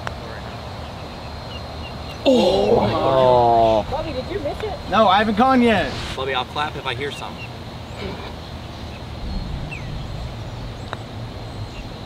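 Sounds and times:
low outdoor rumble: 3.1s - 12.0s.

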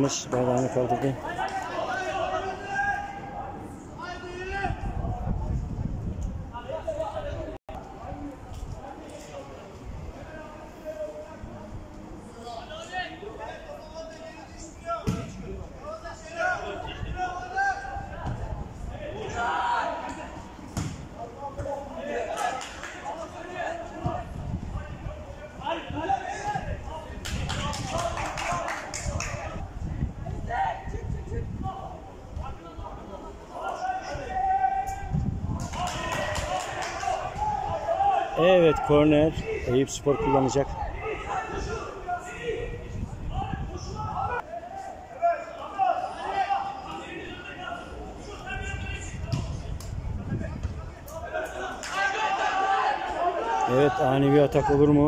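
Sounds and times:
voices calling and shouting: 0.0s - 55.0s
football being kicked: 15.0s - 15.4s, 20.8s - 21.1s.

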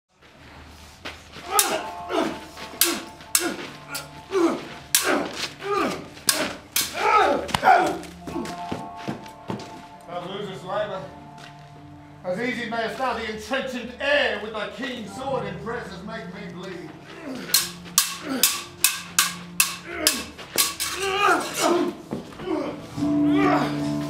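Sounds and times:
sabres clashing: 1.4s - 8.0s, 17.4s - 22.0s
fighters grunting and shouting: 1.4s - 8.2s, 19.8s - 23.8s.

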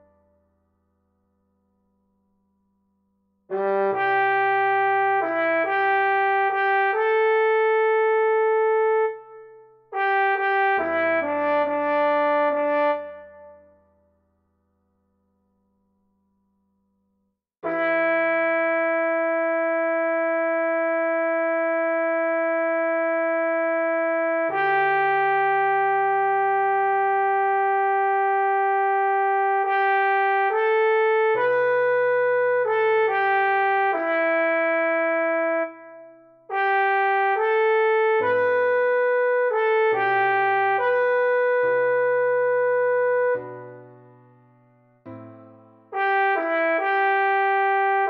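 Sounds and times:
trombone notes: 3.5s - 9.2s, 9.9s - 13.6s, 45.9s - 48.0s
synthesized trombone long note: 3.5s - 13.7s, 17.6s - 43.6s, 45.9s - 48.0s.

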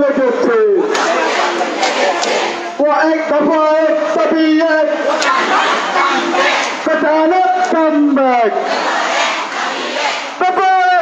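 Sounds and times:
crowd shouting slogans: 0.8s - 2.9s, 4.9s - 7.7s, 8.5s - 10.5s.

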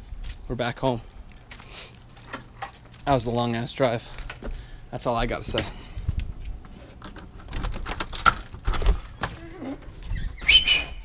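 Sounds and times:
keys rattling in a deadbolt lock: 2.2s - 3.2s, 7.0s - 9.5s
short high squeak: 9.5s - 11.0s.

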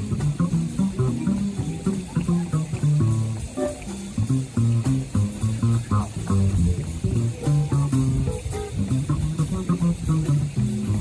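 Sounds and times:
drums: 0.0s - 11.0s
electric guitar: 0.0s - 11.0s
upright double bass: 0.0s - 11.0s.

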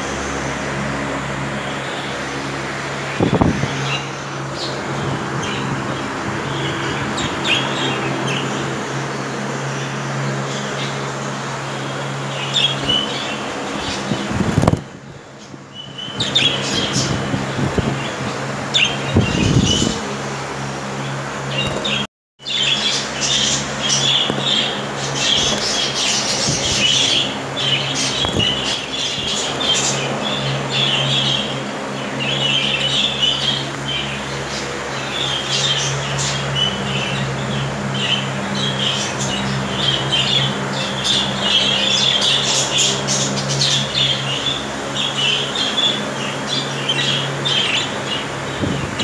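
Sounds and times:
steady low hum: 0.0s - 49.0s
budgerigars chirping: 21.6s - 48.6s.

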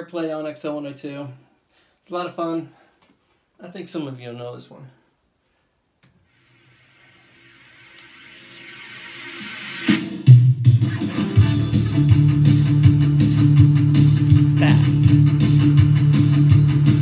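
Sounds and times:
electric guitar: 7.8s - 17.0s
rock band playing: 9.8s - 17.0s.

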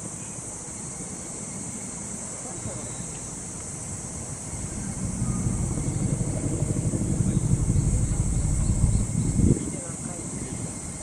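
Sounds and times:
high-pitched hiss: 0.0s - 11.0s
wind buffeting microphone: 3.8s - 11.0s.

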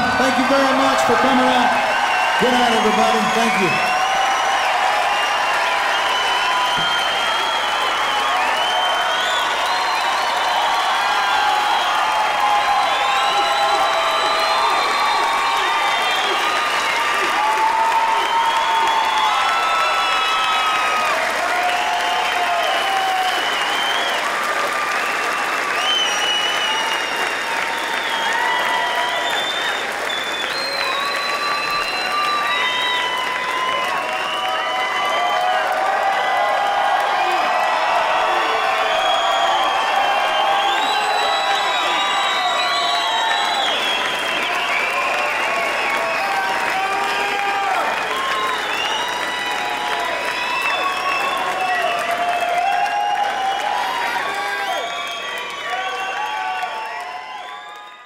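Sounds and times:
audience applauding: 0.0s - 58.0s
crowd shouts and whoops: 0.0s - 58.0s.

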